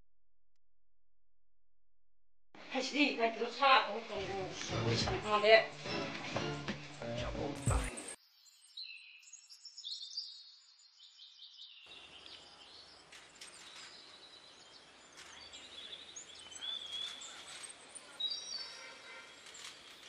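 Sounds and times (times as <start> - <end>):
birds chirping and calling: 11.8 - 20.0.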